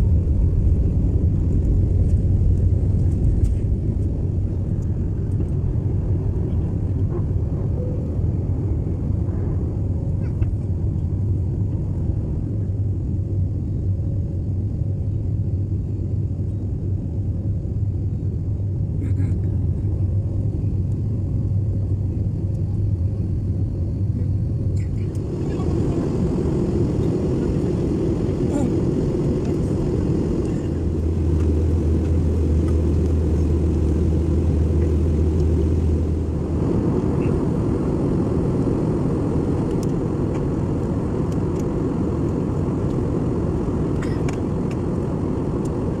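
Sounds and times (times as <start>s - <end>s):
jet engine and airflow rumble: 0.0s - 46.0s
low drone: 0.0s - 46.0s.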